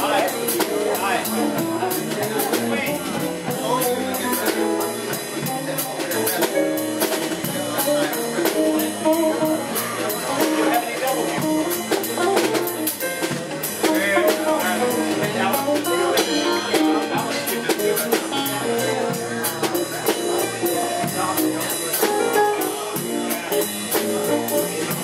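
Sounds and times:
bass: 0.0s - 25.0s
drum kit beat on cymbals: 0.0s - 25.0s.

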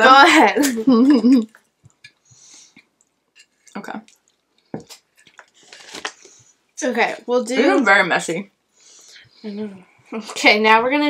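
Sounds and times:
woman's voice: 0.0s - 1.5s, 6.8s - 8.5s, 9.4s - 11.0s
utensil scraping and packaging rustle: 4.7s - 6.6s.

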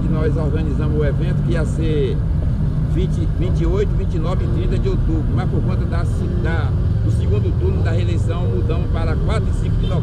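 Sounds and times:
man speaking: 0.0s - 2.2s, 2.9s - 10.0s
steady low rumble: 0.0s - 10.0s.

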